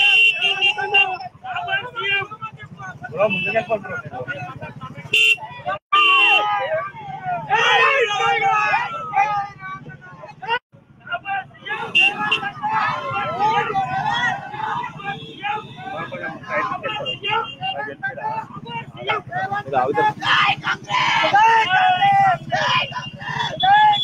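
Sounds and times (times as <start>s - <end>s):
motorbike horns honking: 0.0s - 4.2s, 4.8s - 6.6s, 11.6s - 18.0s, 21.5s - 24.0s
crowd shouting and cheering: 0.0s - 24.0s
motorcycle engines running: 0.1s - 24.0s.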